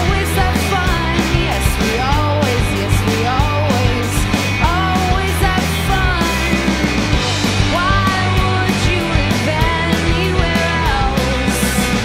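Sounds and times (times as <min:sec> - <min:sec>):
drum kit beat: 0:00.0 - 0:12.0
electric bass: 0:00.0 - 0:12.0
electric guitars: 0:00.0 - 0:12.0.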